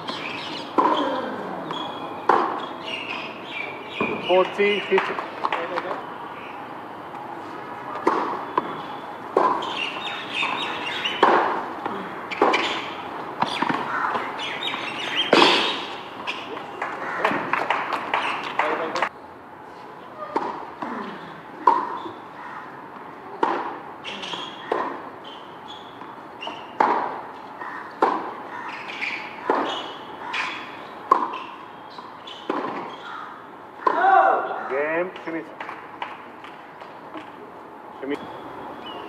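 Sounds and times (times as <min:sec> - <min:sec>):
tennis ball bouncing: 0:00.0 - 0:01.0, 0:01.6 - 0:03.2, 0:07.9 - 0:19.1, 0:20.3 - 0:21.0, 0:21.6 - 0:22.3, 0:22.9 - 0:30.5, 0:31.1 - 0:33.1, 0:33.8 - 0:34.1, 0:35.6 - 0:37.4
rackets striking tennis ball: 0:00.0 - 0:02.8, 0:04.0 - 0:06.0, 0:07.9 - 0:19.1, 0:20.3 - 0:21.0, 0:21.6 - 0:22.2, 0:23.3 - 0:33.0, 0:33.8 - 0:34.1, 0:35.0 - 0:37.4.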